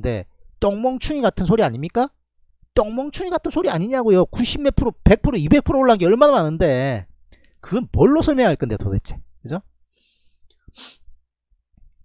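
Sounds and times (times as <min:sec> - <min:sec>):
faint hiss: 0:10.7 - 0:11.1
man exhaling sharply: 0:10.7 - 0:11.1.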